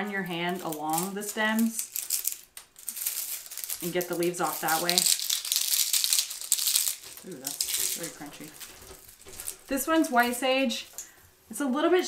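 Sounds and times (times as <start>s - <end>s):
dry leaves crackling and rustling: 0.0s - 11.0s.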